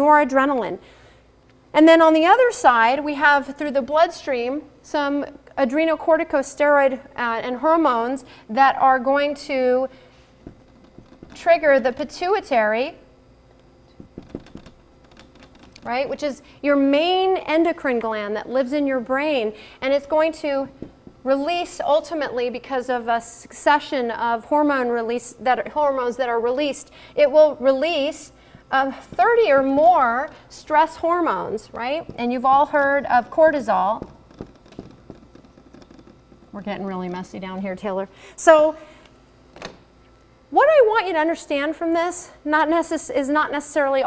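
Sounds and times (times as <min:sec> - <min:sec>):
marker writing on whiteboard: 0:33.5 - 0:36.8.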